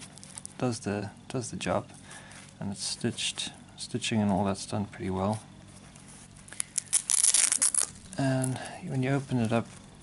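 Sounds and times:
pouch ripping open: 6.5s - 8.5s.

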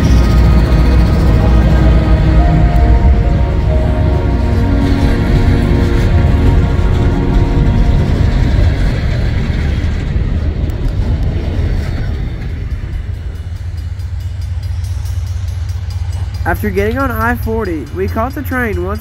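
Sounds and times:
background music: 0.0s - 11.1s, 12.0s - 19.0s
freight train rumbling past: 0.0s - 19.0s.

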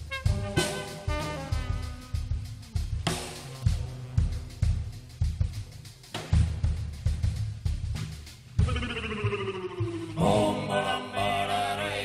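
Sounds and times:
drum kit hits: 0.0s - 5.5s
live jazz: 0.0s - 8.3s
choir chanting: 10.0s - 12.0s.

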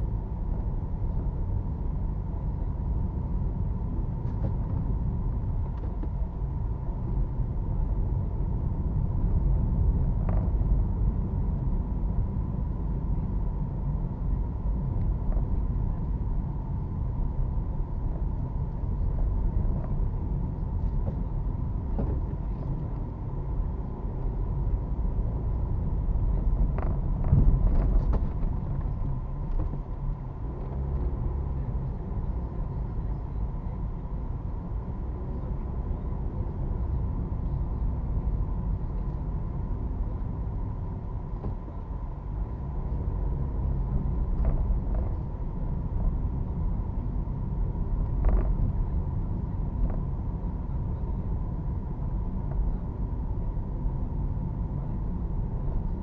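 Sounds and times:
car engine and road rumble: 0.0s - 56.0s.

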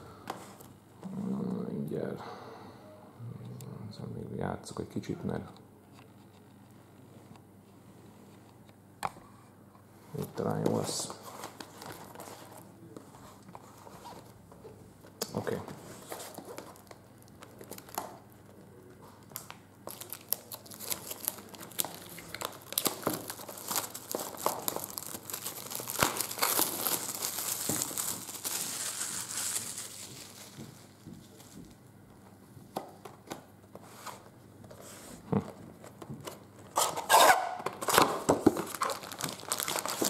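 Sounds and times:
plastic shrink-wrap crinkling and tearing: 15.3s - 31.6s, 36.5s - 40.0s
foil packs crackling: 19.2s - 31.6s, 37.6s - 40.0s.

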